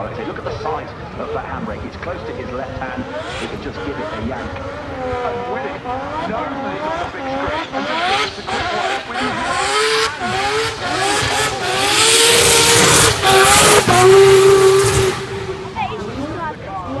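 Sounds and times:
race car engine passing: 0.0s - 17.0s.

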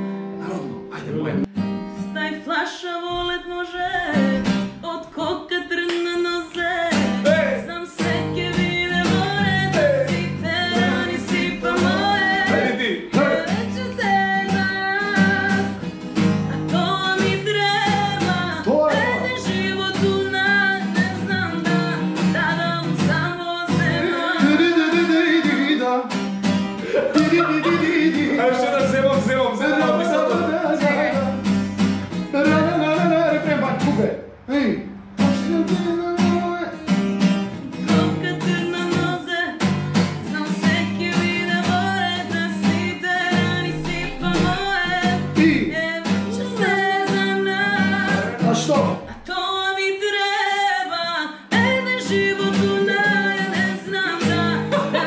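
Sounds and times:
acoustic guitar strumming: 0.0s - 55.0s
woman singing: 2.0s - 25.9s, 26.9s - 31.5s, 37.5s - 55.0s.

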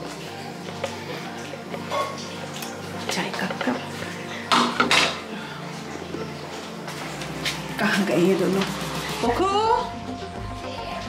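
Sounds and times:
crockery and utensils clinking: 0.6s - 5.3s.

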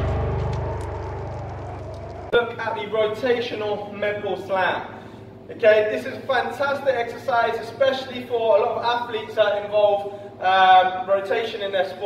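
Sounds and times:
deep boom rumble: 0.0s - 2.3s.

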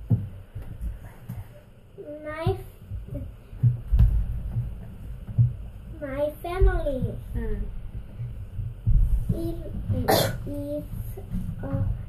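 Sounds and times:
dull handling thumps: 0.0s - 1.5s, 2.2s - 12.0s.

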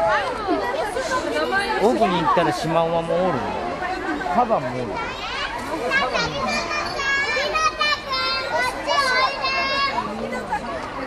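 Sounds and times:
young children talking and calling out: 0.0s - 11.0s.

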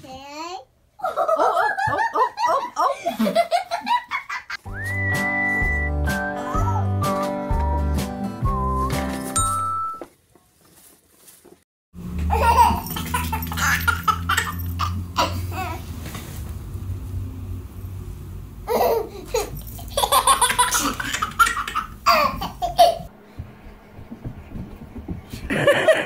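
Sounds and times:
baby laughing: 6.4s - 7.0s, 12.3s - 15.8s, 18.7s - 23.1s
steady low hum: 22.7s - 26.0s.

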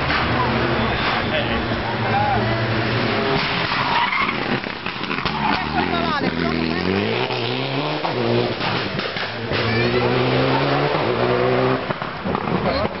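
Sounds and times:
rally car engine accelerating: 1.7s - 13.0s.

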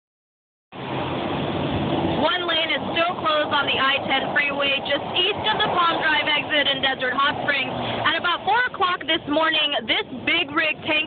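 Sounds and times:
freeway traffic passing: 0.7s - 11.0s.

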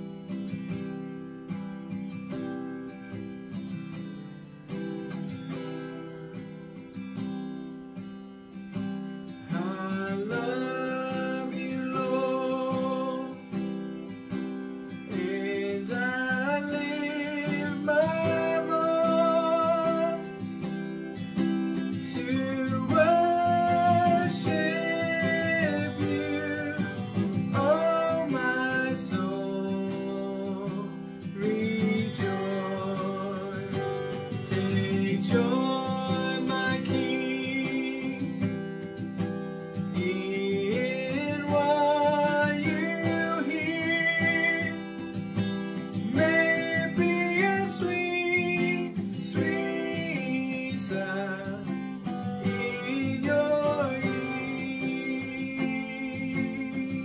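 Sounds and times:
acoustic guitar strumming: 0.0s - 57.0s
man singing: 9.5s - 13.6s, 15.0s - 20.8s, 21.4s - 38.8s, 39.8s - 57.0s.

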